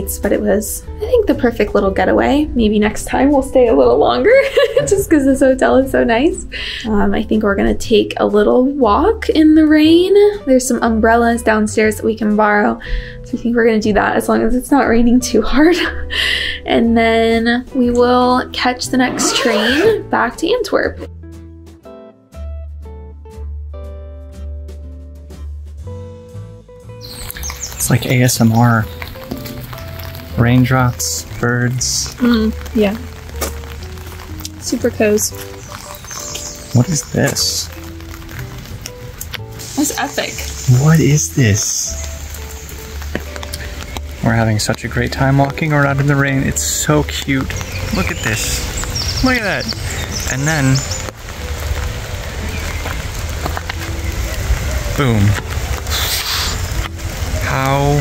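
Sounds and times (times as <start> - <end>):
rain: 0.0 - 7.9, 8.8 - 16.6, 27.0 - 58.0
soft guitar music: 0.0 - 58.0
birds chirping: 18.1 - 20.9, 26.8 - 58.0
drops tapping: 27.1 - 51.2.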